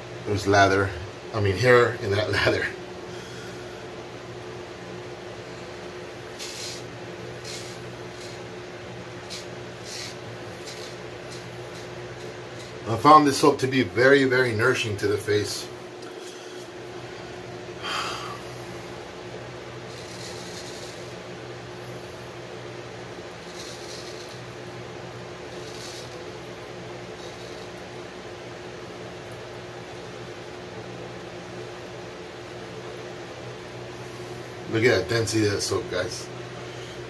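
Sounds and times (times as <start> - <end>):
room hum: 0.0 - 37.0
razor scraping stubble: 6.1 - 15.2, 19.8 - 22.0, 23.4 - 24.8, 25.4 - 26.4, 27.1 - 27.9.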